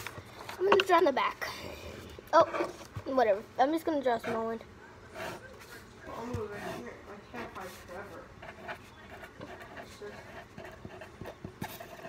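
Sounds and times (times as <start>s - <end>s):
marker drawing on paper: 6.4s - 12.0s.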